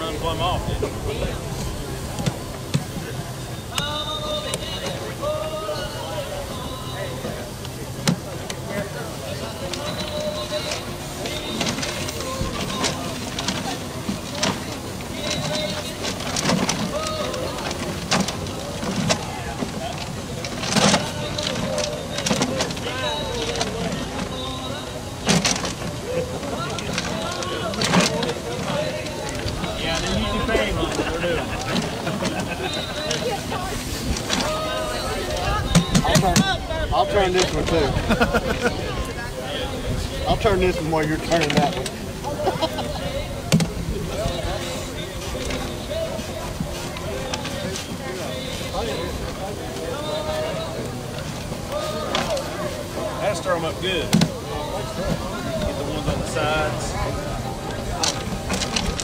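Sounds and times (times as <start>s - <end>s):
crowd chatter: 0.0s - 59.0s
paper tickets tumbling in drum: 0.0s - 59.0s.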